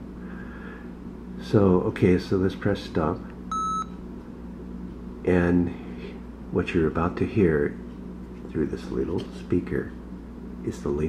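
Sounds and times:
voice recorder beep: 3.5 - 3.9.

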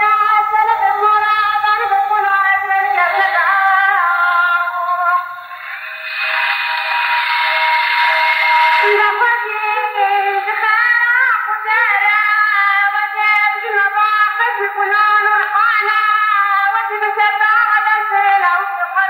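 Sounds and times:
woman singing a folk song: 0.0 - 5.3, 8.8 - 19.0
hissy held tone: 4.2 - 10.6.

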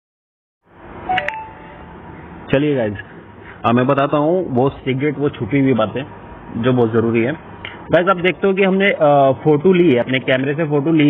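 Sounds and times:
short electronic beeps: 1.1 - 1.8.

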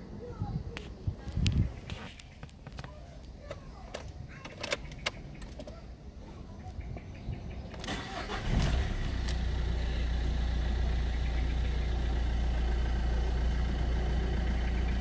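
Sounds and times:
engine starter cranking: 7.8 - 9.4
car engine idling: 7.9 - 15.0.

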